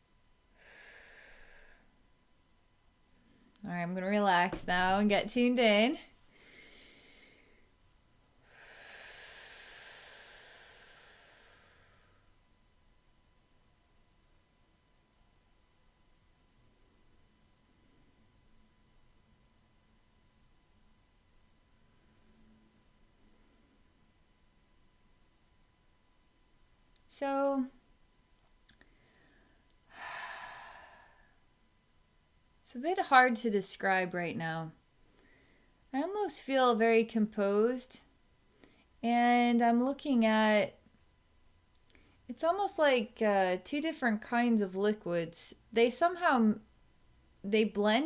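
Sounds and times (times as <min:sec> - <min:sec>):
woman breathing: 0:00.5 - 0:02.0, 0:06.2 - 0:12.4, 0:28.8 - 0:31.5, 0:35.0 - 0:35.8, 0:38.4 - 0:39.0, 0:41.9 - 0:42.3.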